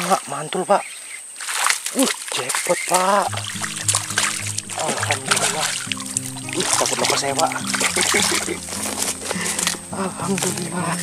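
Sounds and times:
fish splashing in water: 0:01.4 - 0:10.6
background music: 0:03.3 - 0:11.0.

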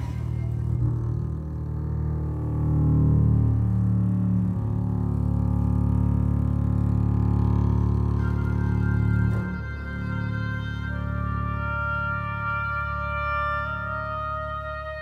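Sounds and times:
high woodwind note: 0:00.0 - 0:01.3, 0:08.0 - 0:15.0
contrabassoon low notes: 0:00.0 - 0:15.0
double bass low notes: 0:00.0 - 0:15.0.

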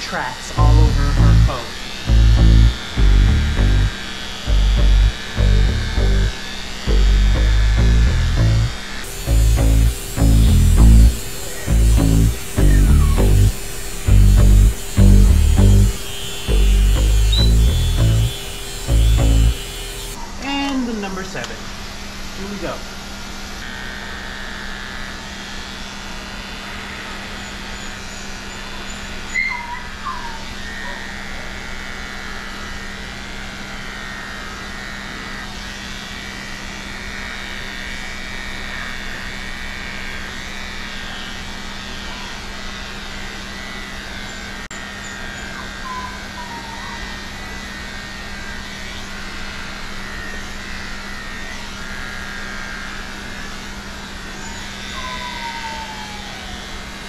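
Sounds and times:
electric dog clipper humming: 0:00.0 - 0:57.0.

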